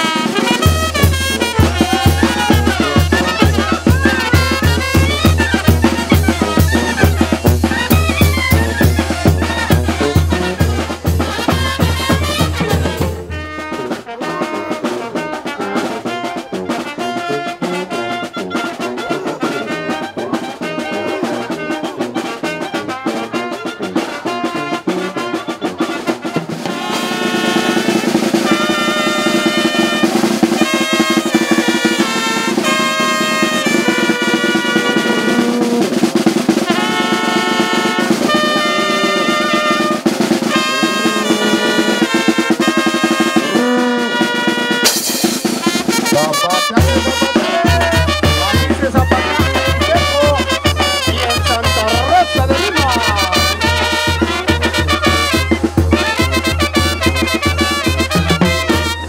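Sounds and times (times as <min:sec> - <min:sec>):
brass band playing dance tune: 0:00.0 - 0:59.0
snare drum rolling: 0:00.0 - 0:59.0
sustained horn lines: 0:22.9 - 0:59.0.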